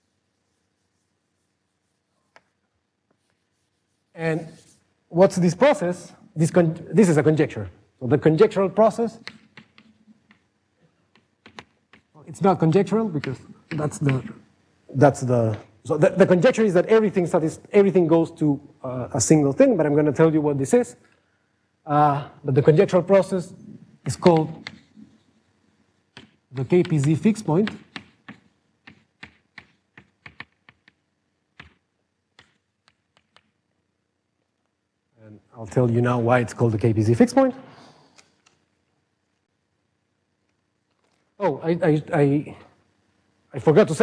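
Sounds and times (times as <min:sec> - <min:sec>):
chalk tapping on blackboard: 0:09.2 - 0:10.5, 0:11.1 - 0:14.4, 0:24.1 - 0:25.2, 0:26.1 - 0:31.0, 0:31.6 - 0:33.6.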